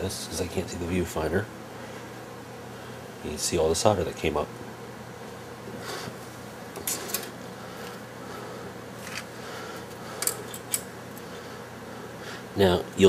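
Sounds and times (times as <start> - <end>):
low background hum: 0.0 - 13.0
tools clicking on metal: 10.2 - 10.9.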